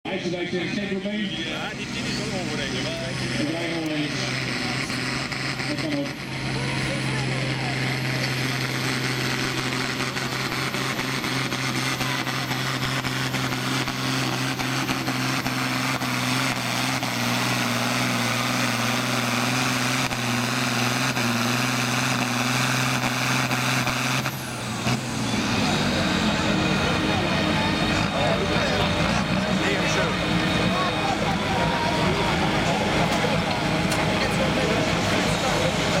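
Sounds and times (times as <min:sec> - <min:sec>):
rough unsteady engine: 0:00.0 - 0:36.0
voices: 0:00.1 - 0:16.9, 0:24.4 - 0:36.0
tractor engine at high revs: 0:00.1 - 0:36.0.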